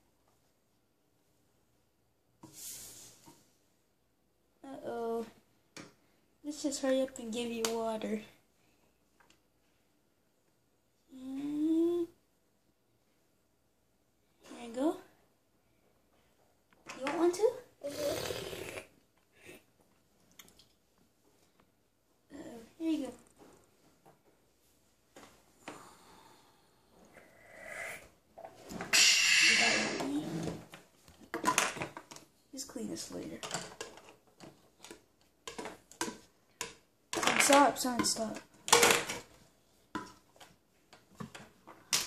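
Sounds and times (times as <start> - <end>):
child's wordless voice: 4.6 - 5.4, 11.1 - 12.2, 16.9 - 18.4, 22.3 - 23.2, 29.0 - 30.6, 37.4 - 38.5
breathy vocal sound: 25.7 - 28.1.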